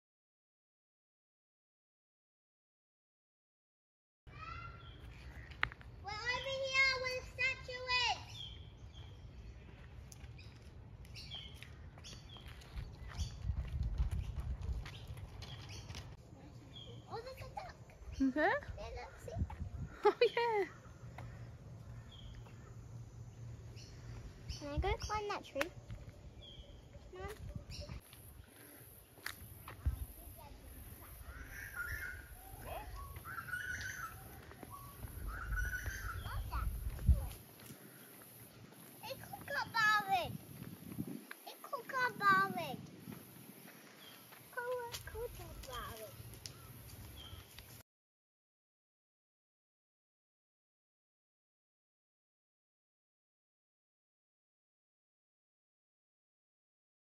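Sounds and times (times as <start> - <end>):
birds calling: 4.3 - 47.8.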